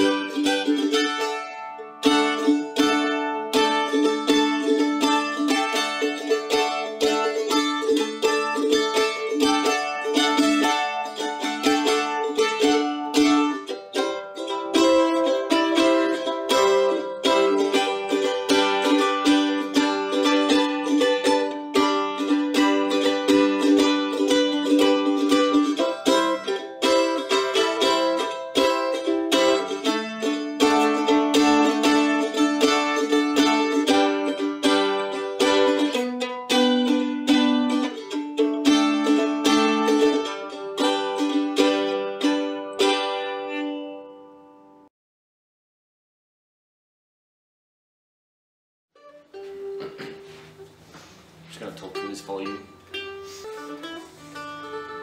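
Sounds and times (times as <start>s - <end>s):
mandolin picked rapidly: 0.0s - 44.0s.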